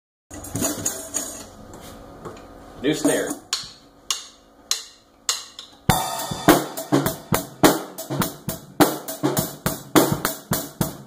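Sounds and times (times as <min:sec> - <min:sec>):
drum hardware clattering: 0:00.3 - 0:01.5, 0:03.0 - 0:10.3.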